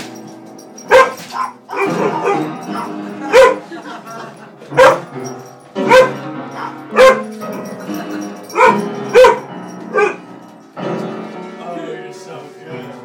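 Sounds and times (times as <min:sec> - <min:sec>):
piano notes: 0:00.0 - 0:13.0
dog barking: 0:00.9 - 0:03.7, 0:04.8 - 0:05.1, 0:05.8 - 0:07.3, 0:08.5 - 0:10.2.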